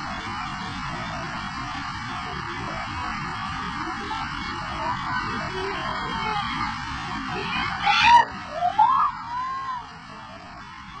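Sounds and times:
white-water river rushing: 0:00.0 - 0:11.0
crowd calling out and screaming: 0:02.9 - 0:11.0.

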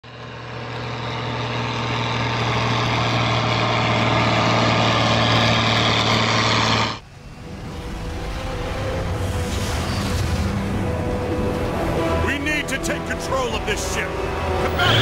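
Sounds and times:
heavy truck engine humming: 0:00.0 - 0:15.0.

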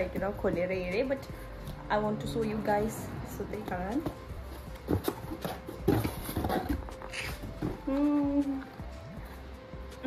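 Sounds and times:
cardboard and paper rustling: 0:04.0 - 0:08.2
person humming a note: 0:07.8 - 0:08.8.

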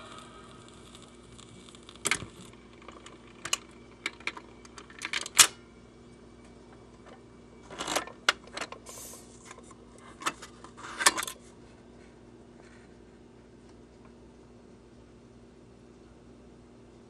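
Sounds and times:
record crackle clicks and pops: 0:00.0 - 0:05.6
faint steady hum: 0:00.0 - 0:17.0.

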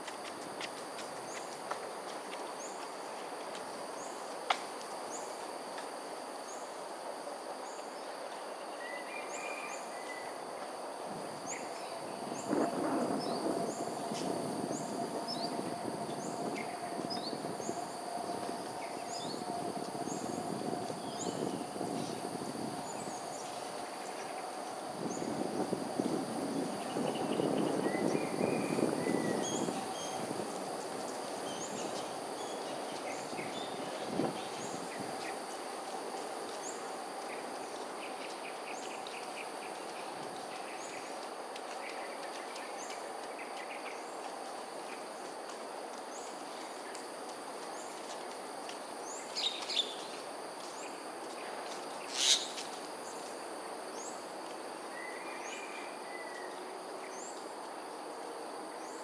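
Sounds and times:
high insect buzz: 0:52.0 - 0:53.0.

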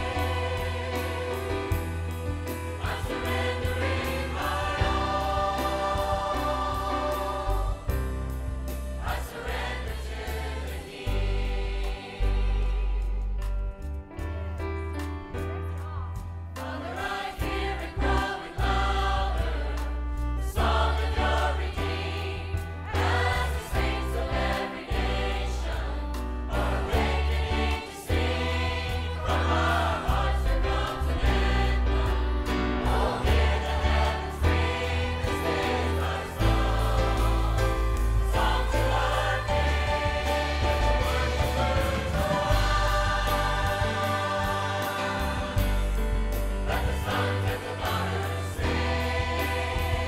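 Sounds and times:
live band playing: 0:00.0 - 0:10.5, 0:27.5 - 0:50.0
choir and congregation singing: 0:00.0 - 0:13.6, 0:15.8 - 0:50.0.

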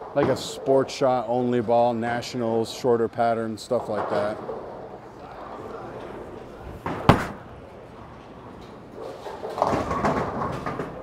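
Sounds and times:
bowling ball rolling: 0:03.8 - 0:11.0
bowling pins clattering: 0:03.8 - 0:11.0
bowling ball thud on lane: 0:06.7 - 0:07.6.

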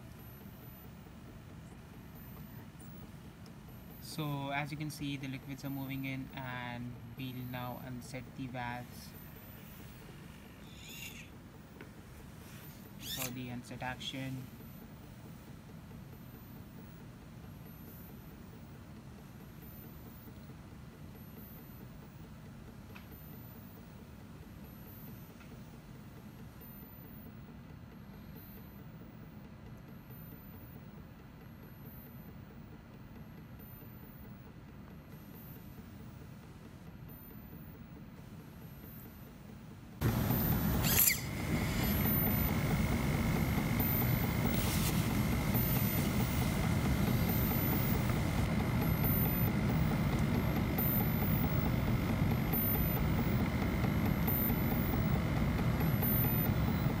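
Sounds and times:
faint steady hiss: 0:00.0 - 0:57.0
loud machine whine: 0:40.0 - 0:57.0.

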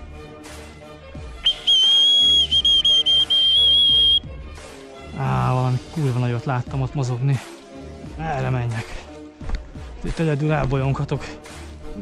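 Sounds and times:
shrill whistle blast: 0:01.4 - 0:04.3.

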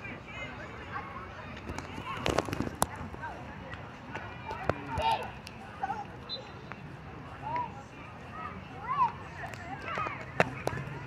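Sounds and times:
children calling and shouting: 0:00.0 - 0:11.0.

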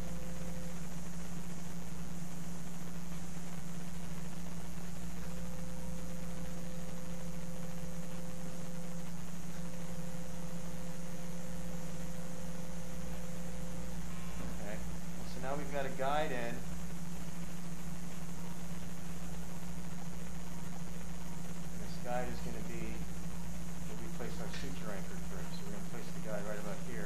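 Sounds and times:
electrical hum: 0:00.0 - 0:27.0
even hiss: 0:00.0 - 0:27.0.

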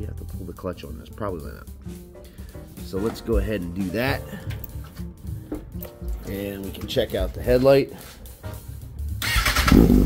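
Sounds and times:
electric starter cranking: 0:09.2 - 0:10.0.

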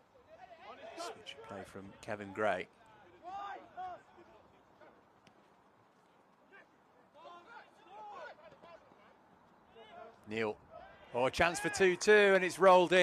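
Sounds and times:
players shouting: 0:00.1 - 0:05.0, 0:06.4 - 0:13.0.

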